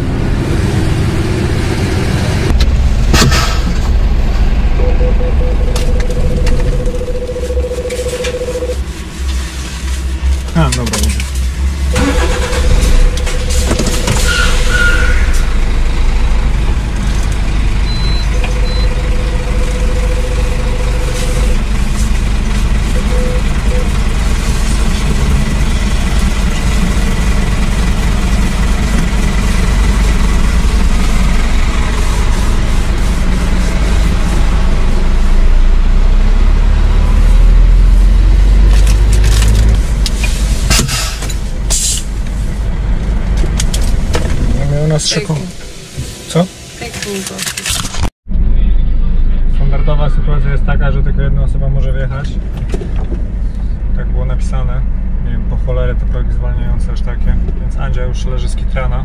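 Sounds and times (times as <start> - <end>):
diesel truck engine rumbling: 0.0 - 59.0.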